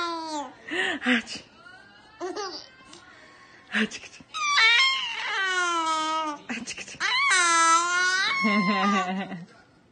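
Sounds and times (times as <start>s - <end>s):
baby squealing: 4.3s - 6.4s, 7.0s - 9.1s.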